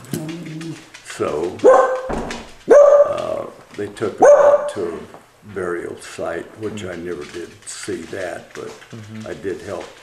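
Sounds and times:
dog barking indoors: 0.0 - 5.1.

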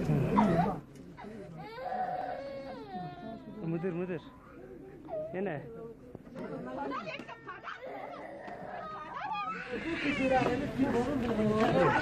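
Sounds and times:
adults' voices: 0.0 - 12.0
child wailing: 7.6 - 10.5.

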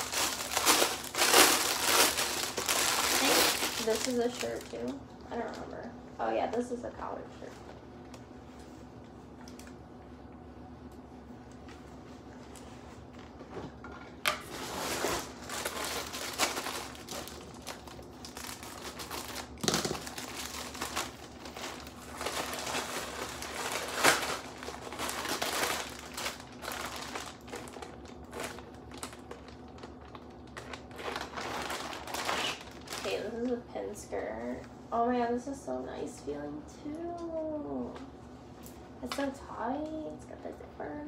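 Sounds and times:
plastic bag crinkling: 0.0 - 5.8, 14.4 - 33.5.

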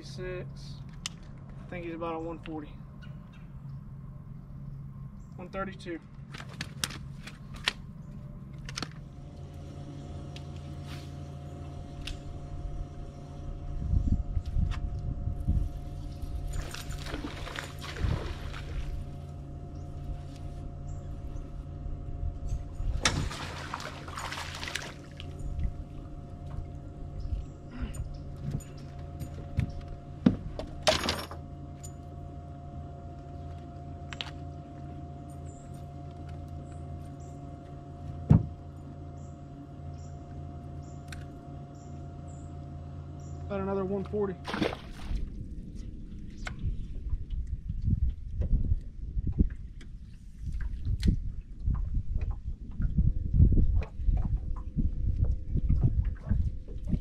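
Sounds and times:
steady low hum: 0.0 - 57.0
clicks and knocks of fishing gear: 6.2 - 7.8.

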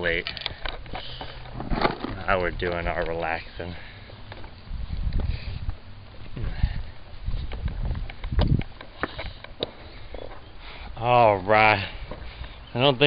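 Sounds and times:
low wind rumble: 1.4 - 8.8.

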